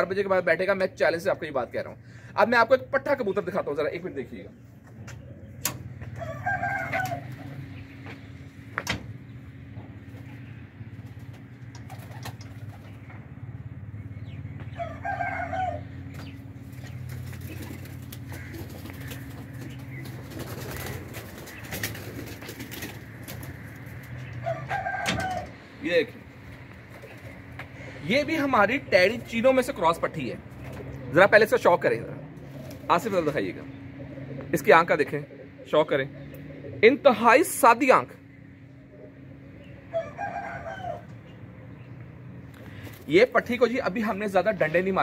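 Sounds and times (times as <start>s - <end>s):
pigeons cooing: 4.1s - 8.5s, 9.5s - 28.1s, 30.4s - 37.5s, 38.2s - 43.1s
rooster crowing: 6.0s - 7.6s, 14.8s - 16.1s, 24.4s - 25.6s, 39.8s - 41.2s.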